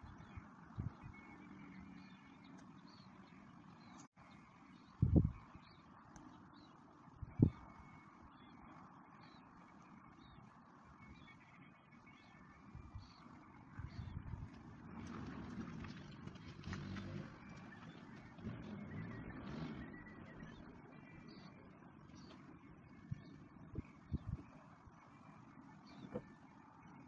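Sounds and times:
faint outdoor background noise: 0.0 - 27.0.

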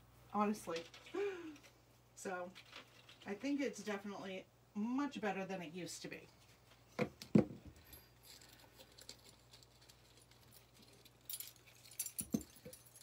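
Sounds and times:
jewelry clinking and rattling: 7.6 - 13.0.

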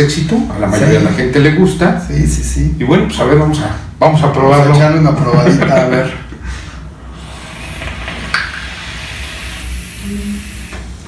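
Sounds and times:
vape hissing: 7.0 - 11.0.

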